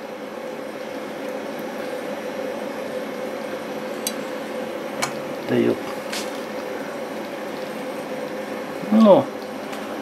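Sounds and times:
distillation rig humming and hissing: 0.0s - 10.0s.

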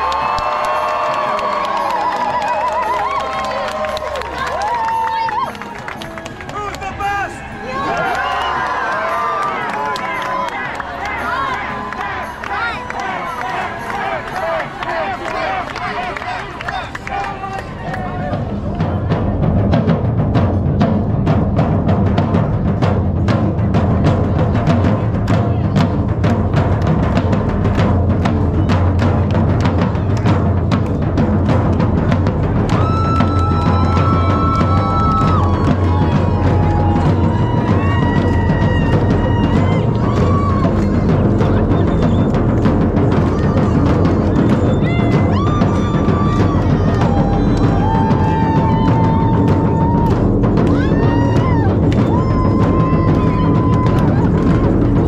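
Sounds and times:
crowd voices: 0.0s - 21.3s, 22.0s - 55.0s
drum ensemble with timpani: 17.9s - 55.0s.

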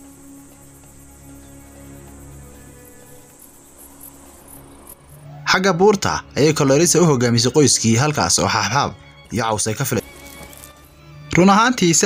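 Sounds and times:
low steady drone: 0.0s - 7.2s
insect chirping: 0.0s - 11.3s.

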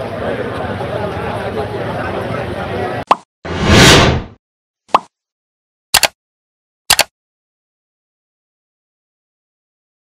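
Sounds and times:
crowd chatter: 0.0s - 3.1s
street noise: 0.0s - 3.2s
sharp pop: 3.1s - 3.3s, 4.9s - 5.1s
loud whoosh: 3.5s - 4.4s
click: 6.0s - 6.2s, 6.9s - 7.1s.

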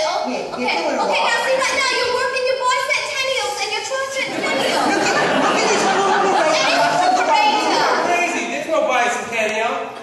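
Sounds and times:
voices chattering: 0.5s - 8.8s.

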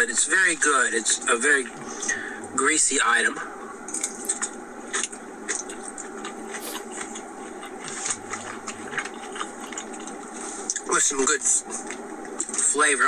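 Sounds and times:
person chewing food: 3.9s - 10.8s.

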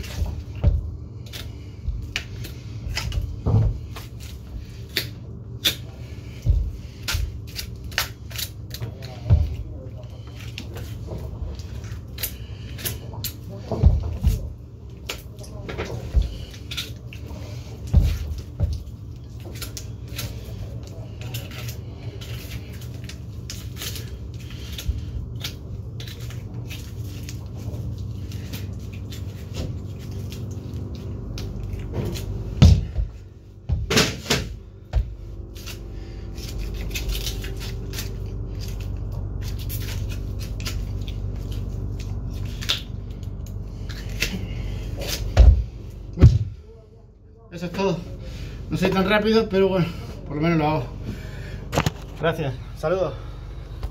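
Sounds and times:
knife cutting and scraping meat: 0.0s - 33.4s, 34.3s - 46.1s
low machine hum: 0.0s - 53.9s.

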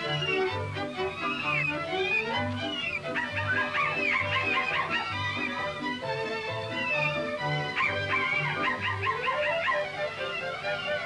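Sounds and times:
high wavering yips: 0.0s - 5.8s
cartoon orchestral music: 0.0s - 11.0s.

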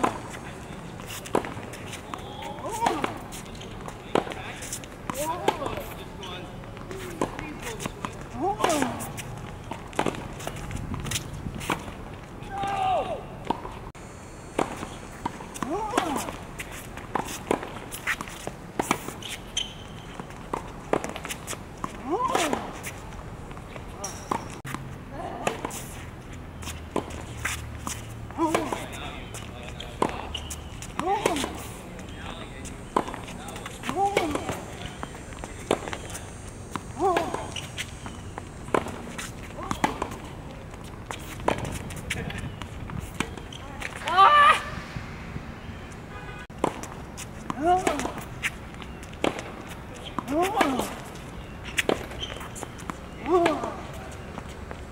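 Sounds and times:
sneakers squeaking on court: 0.0s - 13.8s, 14.5s - 54.9s
tennis ball bounces: 0.0s - 13.8s, 14.5s - 26.0s, 26.6s - 45.9s, 46.6s - 54.9s.

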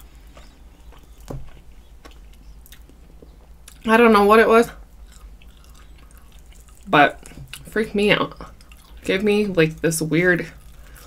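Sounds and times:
close chewing: 0.0s - 3.9s, 4.9s - 11.0s.

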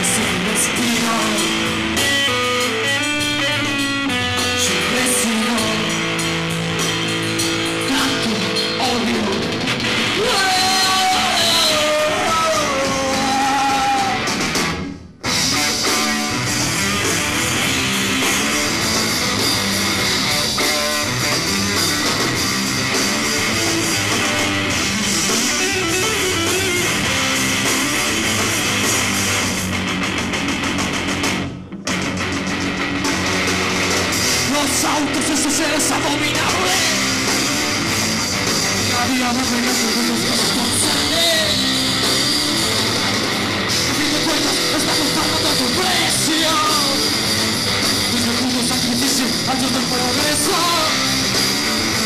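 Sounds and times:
live rock band playing: 0.0s - 52.0s
pitch-bending guitar line: 0.0s - 52.0s.

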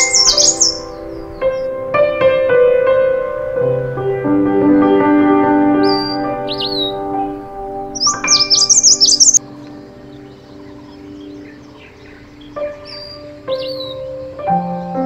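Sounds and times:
birds chirping: 0.0s - 15.0s
soft background music: 0.0s - 15.0s.

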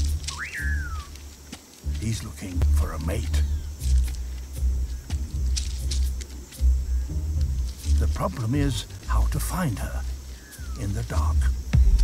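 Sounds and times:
low steady bass tones: 0.0s - 12.0s
whistle-like call: 0.3s - 1.2s.

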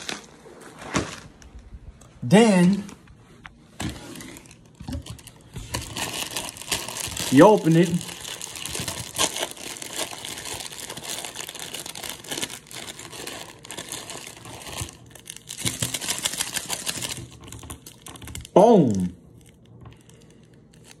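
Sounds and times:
plastic wrapper crinkling: 0.0s - 1.6s, 3.8s - 18.6s, 19.2s - 21.0s.

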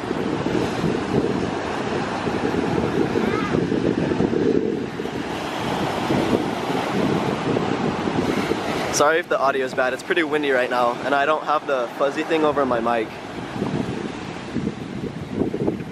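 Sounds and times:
small waves breaking on shore: 0.0s - 15.9s
wind buffeting microphone: 0.0s - 15.9s.

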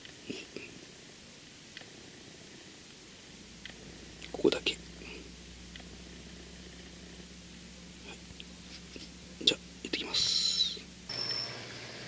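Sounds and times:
faint low hum: 0.0s - 12.0s
soft breath or murmur: 0.2s - 4.2s, 4.9s - 7.3s.

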